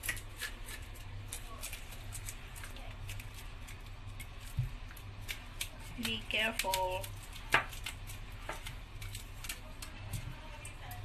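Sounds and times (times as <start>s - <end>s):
knife scraping fish scales: 0.0s - 4.5s.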